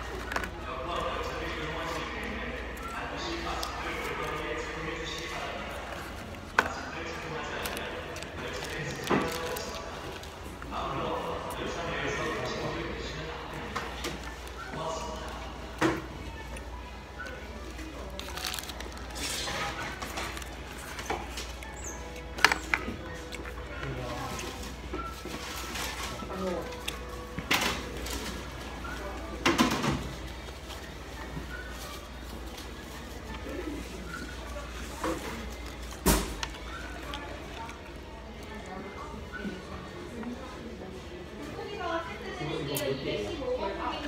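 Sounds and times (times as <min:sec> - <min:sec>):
restaurant ambience hum: 0:00.0 - 0:44.0
paper wrapper rustling: 0:07.6 - 0:10.3, 0:17.7 - 0:21.4.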